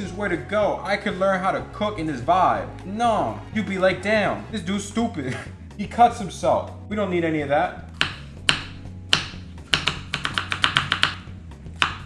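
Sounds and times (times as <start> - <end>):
background music: 0.0 - 12.0
knife chopping onion on board: 8.0 - 12.0.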